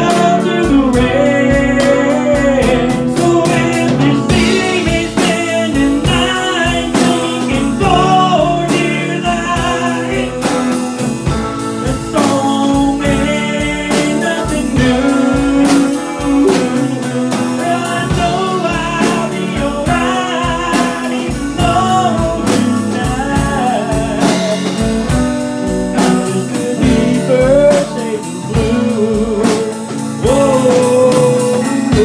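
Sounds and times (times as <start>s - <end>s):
drum kit beat: 0.0s - 32.0s
guitar: 0.0s - 32.0s
man singing: 0.0s - 32.0s.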